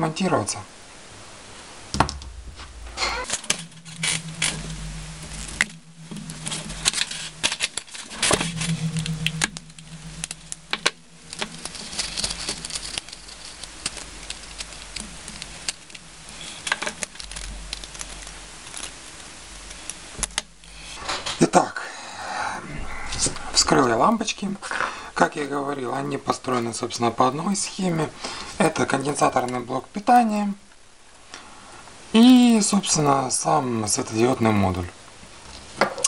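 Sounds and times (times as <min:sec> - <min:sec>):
low hum: 0:01.9 - 0:25.6.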